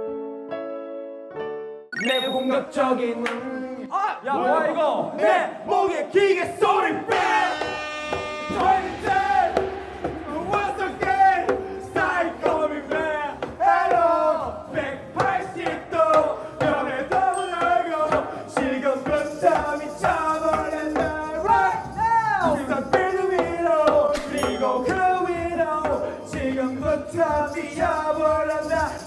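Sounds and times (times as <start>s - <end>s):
karaoke music: 2.0s - 4.0s, 6.6s - 29.0s
men singing into microphones: 2.2s - 3.9s, 4.5s - 29.0s.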